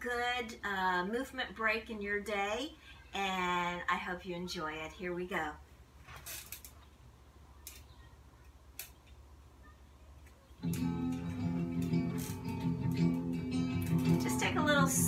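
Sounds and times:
guitar music: 10.6s - 15.0s.

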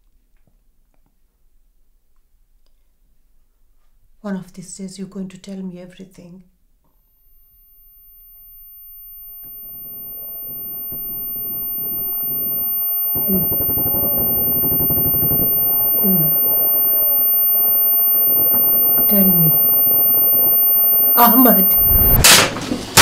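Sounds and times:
high-pitched ringing tone: 6.9s - 22.3s
jumble of distorted voices: 8.6s - 22.4s.

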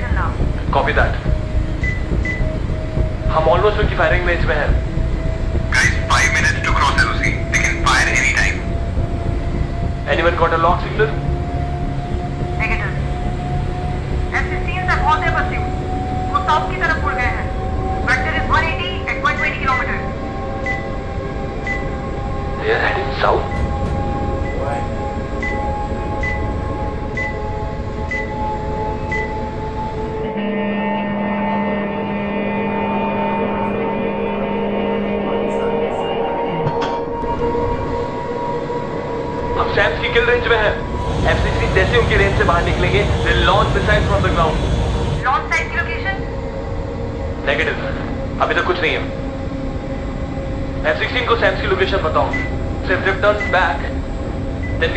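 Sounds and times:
voices: 0.0s - 9.3s, 10.0s - 20.2s, 22.6s - 24.9s, 31.3s - 38.2s, 39.4s - 46.4s
cockpit radar beeping: 0.0s - 20.0s
steady low tone: 0.0s - 54.9s
sustained rising tone: 20.0s - 47.4s.

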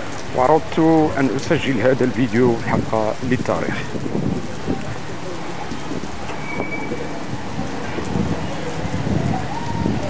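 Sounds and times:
heavy rain splashing on street: 0.0s - 10.0s.

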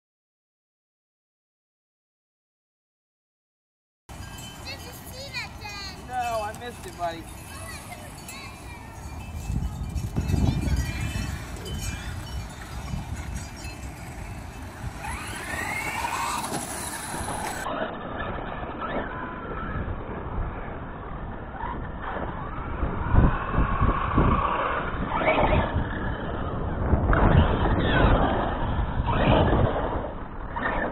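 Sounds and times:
electric motor whining: 11.7s - 17.7s.

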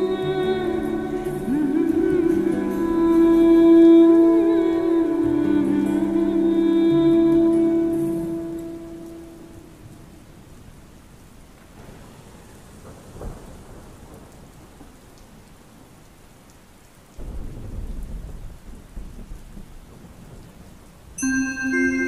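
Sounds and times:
slowed lofi song: 0.0s - 10.4s
rain hiss: 0.0s - 22.0s
low rumble of thunder: 9.5s - 15.9s, 17.1s - 21.2s.

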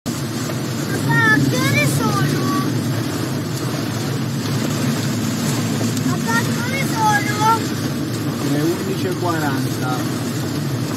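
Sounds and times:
car driving in heavy rain: 0.1s - 10.9s
child speaking: 0.9s - 2.8s, 6.0s - 7.7s.

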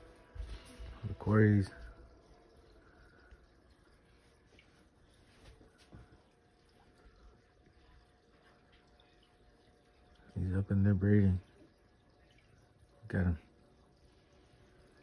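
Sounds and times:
aquarium filter bubbling: 0.0s - 15.0s.

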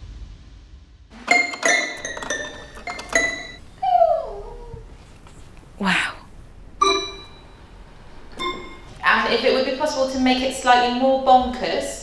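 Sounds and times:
bell-like struck notes: 1.2s - 3.6s, 6.8s - 9.3s
dog howling: 3.8s - 5.0s.

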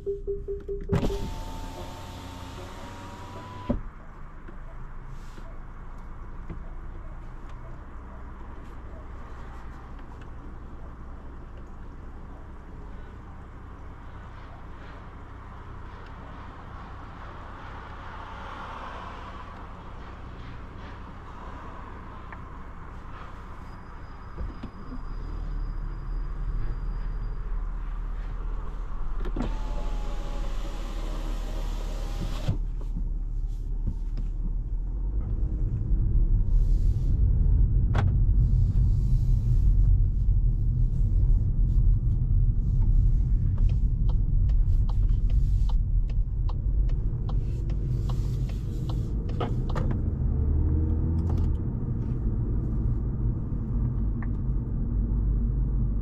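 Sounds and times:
car engine and tyres rumbling: 0.0s - 56.0s.

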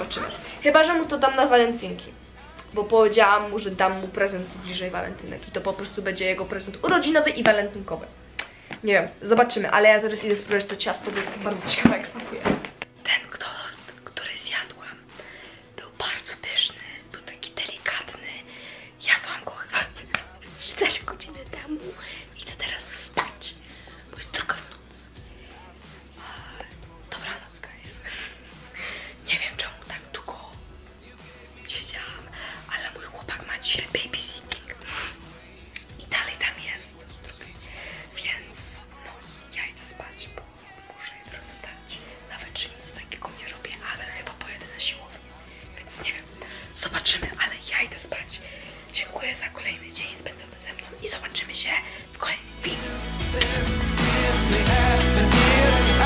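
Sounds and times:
woman whispering: 0.0s - 2.2s, 2.9s - 8.1s, 8.7s - 15.2s, 15.8s - 25.1s, 26.2s - 30.6s, 31.6s - 35.2s, 35.8s - 53.0s
woman talking: 0.0s - 14.9s, 19.0s - 23.5s, 45.9s - 52.4s
quiet background music: 0.0s - 56.0s.

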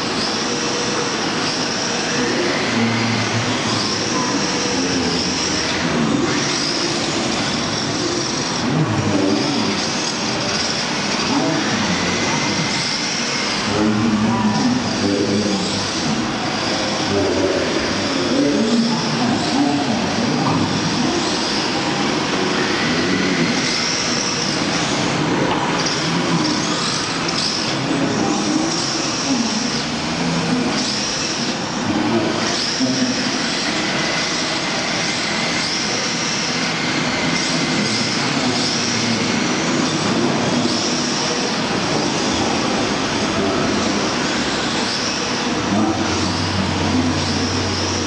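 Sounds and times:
electric motors whining: 0.0s - 48.0s.

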